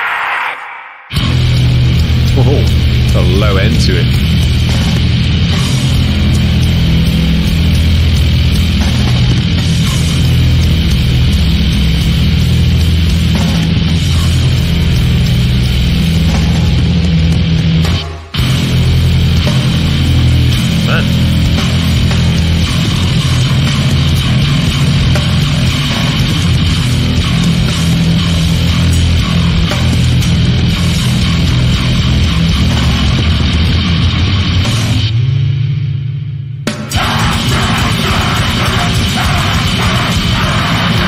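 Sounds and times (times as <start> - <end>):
drums: 0.0 - 41.0
distorted bass: 1.1 - 41.0.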